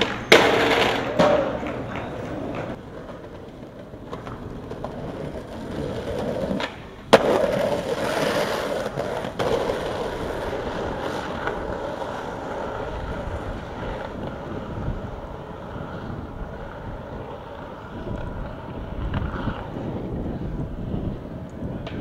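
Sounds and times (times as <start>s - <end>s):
skateboard clack: 0.0s - 22.0s
skateboard wheels rolling on asphalt: 0.0s - 22.0s.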